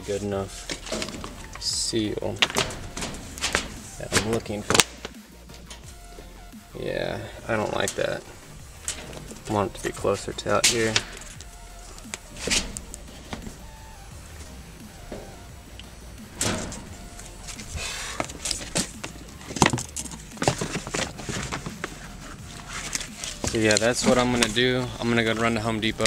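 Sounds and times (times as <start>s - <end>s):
faint background music: 0.0s - 26.0s
handling knocks and rustles: 0.0s - 26.0s.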